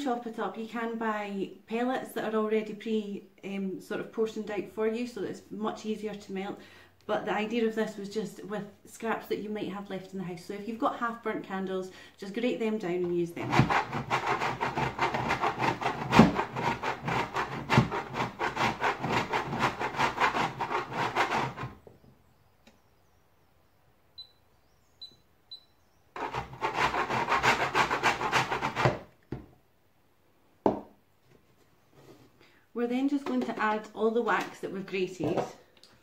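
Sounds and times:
wax rasping on metal grater: 13.4 - 21.8, 26.2 - 29.0
knock: 30.6 - 30.9.

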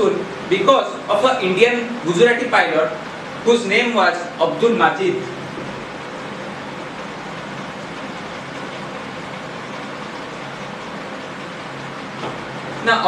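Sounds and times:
steady room noise: 0.0 - 13.0.

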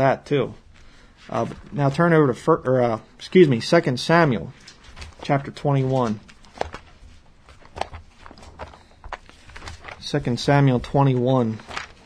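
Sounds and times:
pages rustling: 4.5 - 12.0.

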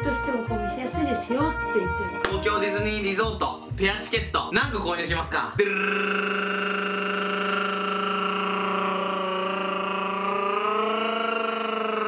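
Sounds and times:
man holding a long vocal note: 5.6 - 12.0.

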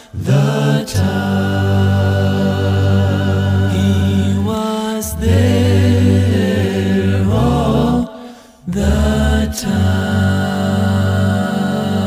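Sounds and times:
male a cappella group singing: 0.0 - 12.0.

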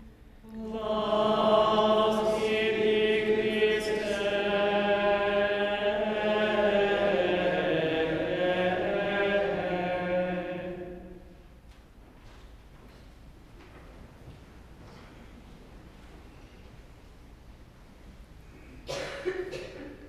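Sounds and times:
congregation chanting: 0.0 - 11.6.

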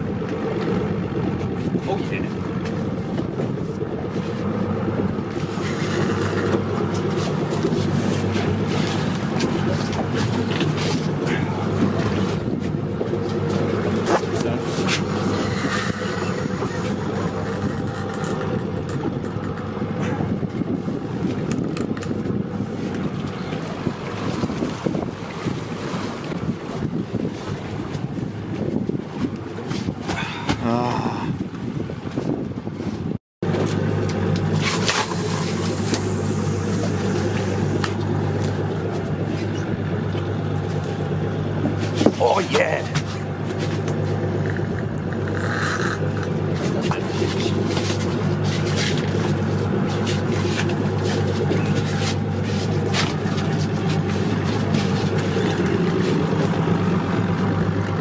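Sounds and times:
boat engine humming: 0.0 - 58.0
water noise: 0.0 - 58.0
wind: 0.0 - 58.0.

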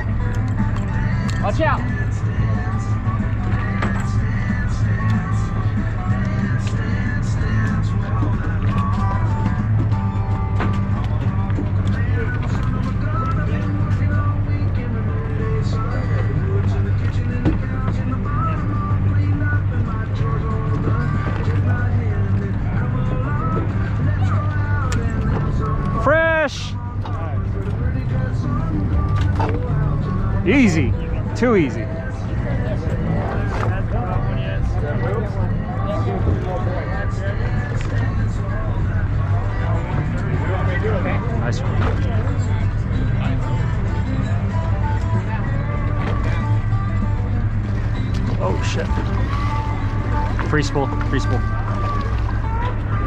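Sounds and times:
boat machinery humming: 0.0 - 53.0
music in background: 0.0 - 53.0
voices: 11.1 - 53.0.

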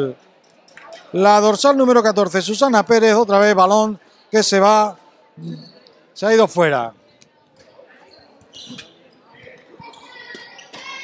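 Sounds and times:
faint voices: 0.0 - 11.0
shoe squeak: 5.4 - 6.0, 7.6 - 11.0.

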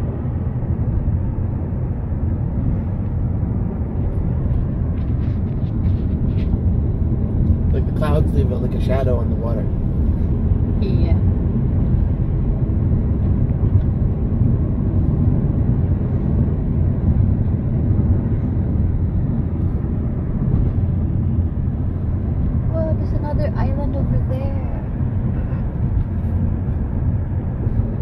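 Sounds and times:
car engine rumble inside cabin: 0.0 - 28.0.

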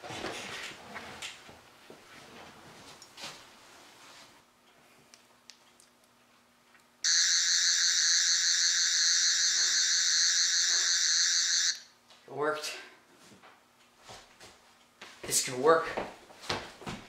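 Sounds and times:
warbling electronic buzz: 7.1 - 11.8.

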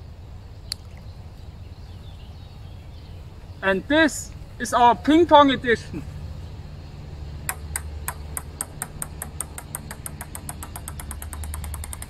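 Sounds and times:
steady low hum: 5.9 - 12.0
ping-pong ball bouncing: 7.5 - 12.0.

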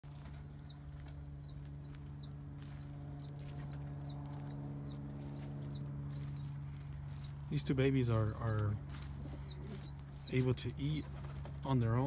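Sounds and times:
steady low hum: 0.0 - 12.0
bird chirping: 0.1 - 12.0.

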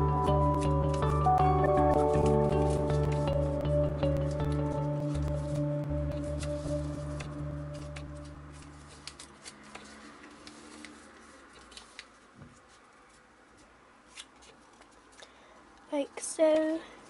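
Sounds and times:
background music tones: 0.0 - 9.5
paper being folded and creased: 1.9 - 15.1.

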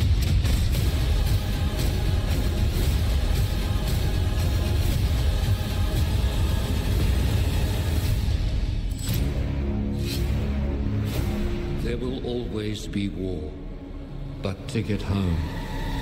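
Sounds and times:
dense trailer music: 0.0 - 16.0.

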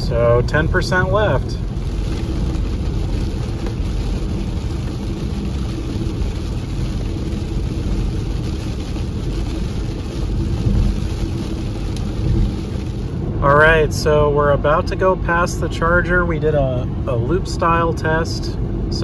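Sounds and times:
tyres on wet road rumble: 0.0 - 19.0.

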